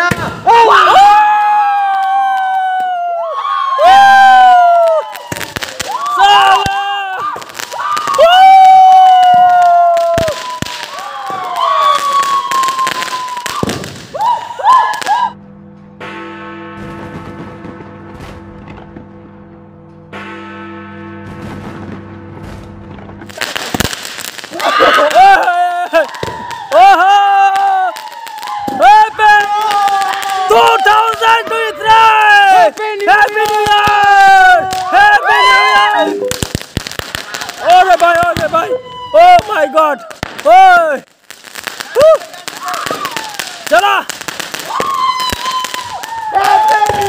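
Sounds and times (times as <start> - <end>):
fireworks crackling bangs: 0.0 - 1.0, 3.9 - 15.4, 16.0 - 19.3, 21.2 - 47.0
people shouting: 0.0 - 15.4, 24.5 - 36.5, 37.1 - 41.0, 41.8 - 47.0.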